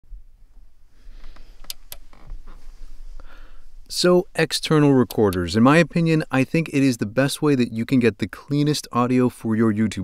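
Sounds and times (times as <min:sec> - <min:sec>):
faint rustling: 0:00.4 - 0:06.2
man speaking: 0:03.9 - 0:10.0.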